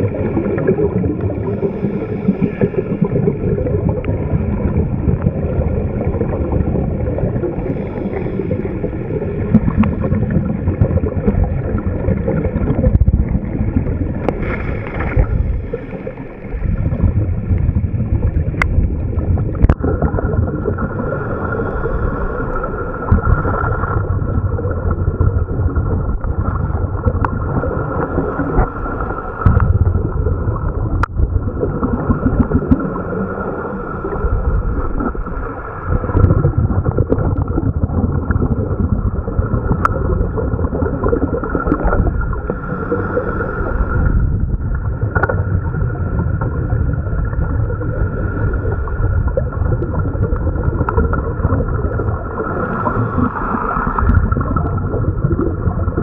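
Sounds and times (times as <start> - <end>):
water noise: 0.0 - 56.0
wind noise: 3.2 - 15.9, 16.6 - 56.0.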